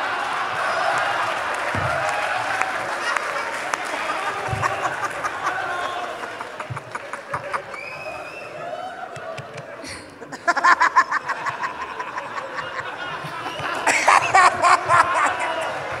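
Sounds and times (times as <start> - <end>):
loud clapping: 0.0 - 9.8, 11.4 - 16.0
audience laughing and chattering: 0.0 - 16.0.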